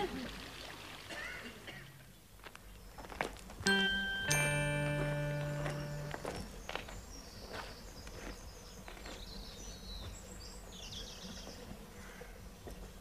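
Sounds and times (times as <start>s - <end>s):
birds chirping: 1.7s - 12.8s
footsteps on gravel: 4.8s - 9.3s.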